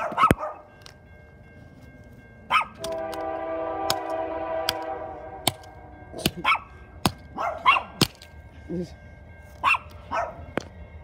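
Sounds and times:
steady ringing of held notes: 0.6s - 11.0s.

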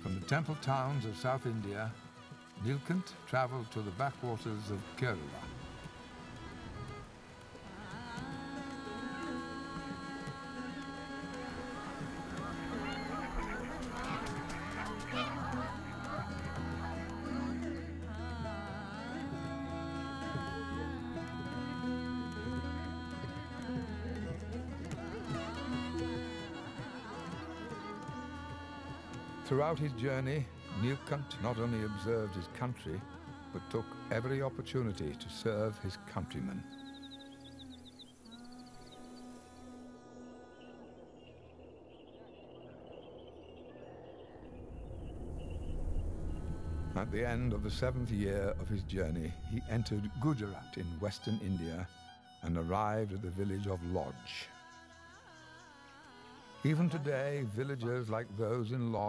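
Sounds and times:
ducks quacking: 11.8s - 17.5s
low held note film music: 44.8s - 54.3s.

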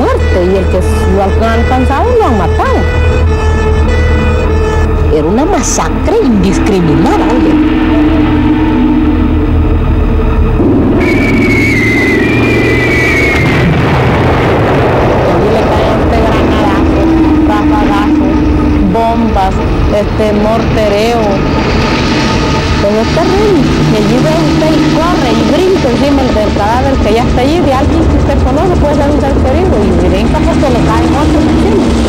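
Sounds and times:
steady low rumble: 0.0s - 32.0s
high wavering cry: 2.0s - 13.7s.

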